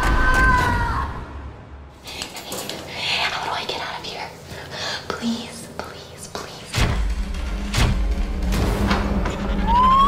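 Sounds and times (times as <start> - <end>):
person whispering: 2.0 - 7.0.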